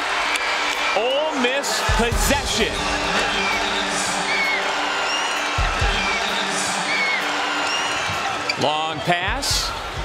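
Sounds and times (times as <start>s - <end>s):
crowd cheering and clapping: 0.0s - 10.0s.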